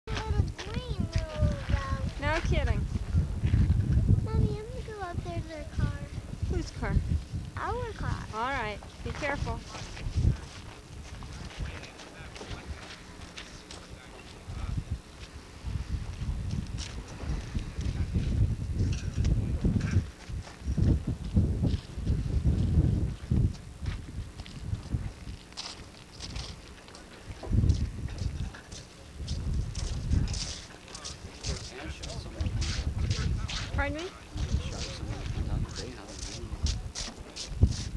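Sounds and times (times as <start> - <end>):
wind buffeting microphone: 0.1 - 37.9.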